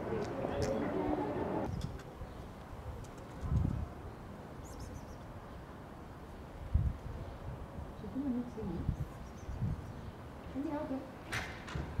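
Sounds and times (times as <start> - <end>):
quiet street ambience: 0.0 - 12.0.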